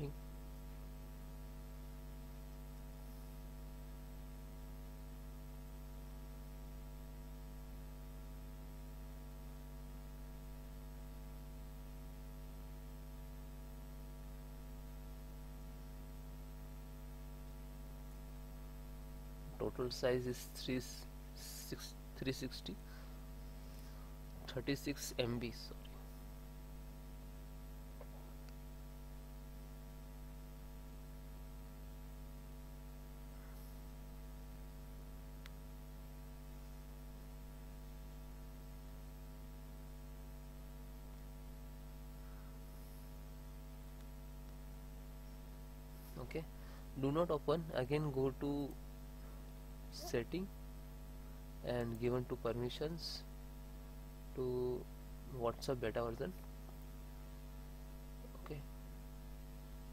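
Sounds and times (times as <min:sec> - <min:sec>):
electrical mains hum: 0:00.0 - 0:59.9
person saying a word: 0:49.9 - 0:50.5.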